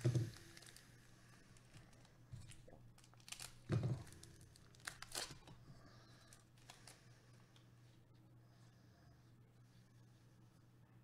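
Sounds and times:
foil wrapper tearing and crinkling: 0.0 - 0.8, 3.0 - 5.5, 6.3 - 7.0.

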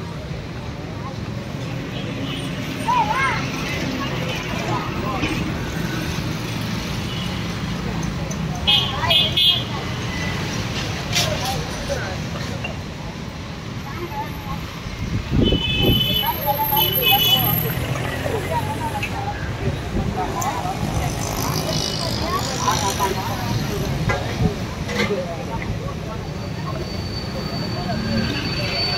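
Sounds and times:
people talking: 0.0 - 6.2, 7.5 - 28.9
street traffic hum: 0.0 - 28.9.

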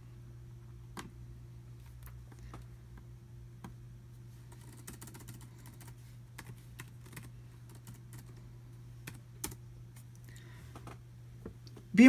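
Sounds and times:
steady low hum: 0.0 - 12.0
laptop keyboard keystrokes: 4.5 - 8.4, 9.0 - 9.6.

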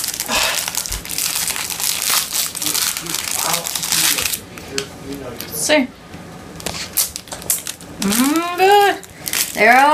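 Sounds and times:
plastic wrappers crinkling: 0.0 - 5.3, 6.6 - 9.9.

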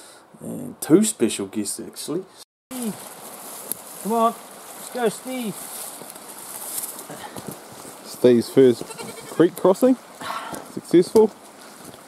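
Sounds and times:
steady high hiss: 0.0 - 11.9
footsteps on forest floor: 2.7 - 9.4, 10.0 - 12.0.

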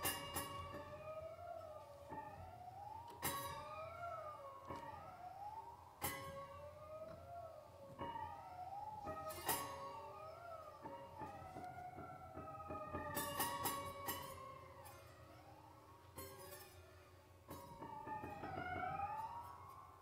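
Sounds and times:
gliding siren-like piano tones: 0.0 - 20.0.

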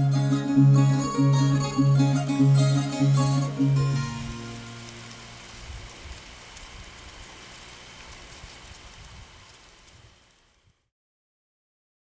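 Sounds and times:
plucked string music: 0.0 - 5.6
rain-like hiss with ticks: 2.2 - 10.9.

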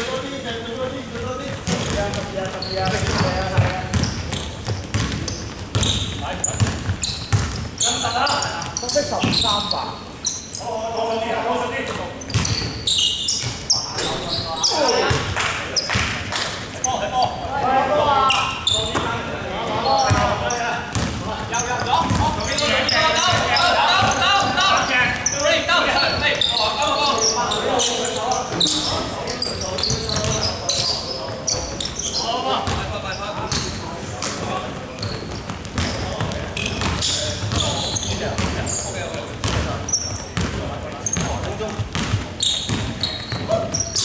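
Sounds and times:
players calling out: 1.0 - 33.8
basketball bouncing on wooden floor: 1.2 - 7.8, 12.3 - 12.7, 20.9 - 22.5, 29.8 - 30.5, 35.0 - 38.6, 39.4 - 43.6.

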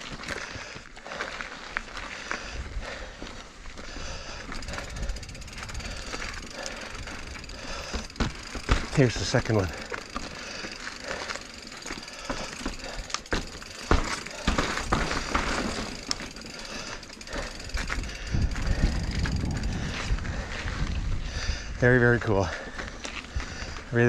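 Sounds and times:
bike tyres rolling on rock: 0.0 - 24.0
bike knocks and rattles: 2.4 - 21.0
low rumble: 17.7 - 21.4.

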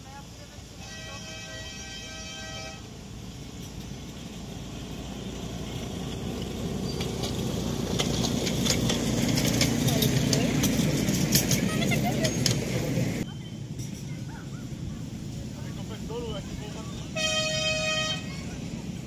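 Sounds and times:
miniature train rumbling: 0.0 - 19.0
wheels clicking over rail joints: 0.9 - 19.0.

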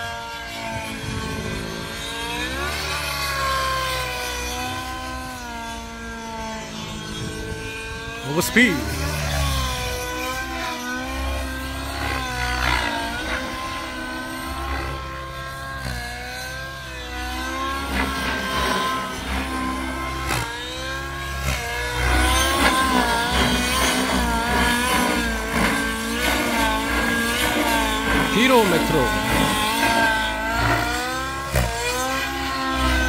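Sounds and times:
model helicopter engine whine: 0.0 - 33.0.

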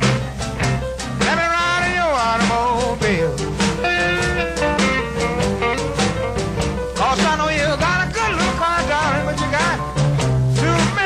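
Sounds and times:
blues band playing: 0.0 - 11.0
drums keeping a steady beat: 0.0 - 11.0.

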